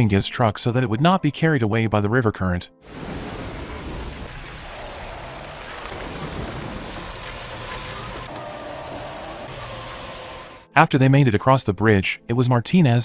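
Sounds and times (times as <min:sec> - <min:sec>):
heavy rain: 0:02.8 - 0:10.7
rushing river water: 0:02.9 - 0:10.7
truck engine running: 0:03.0 - 0:10.7.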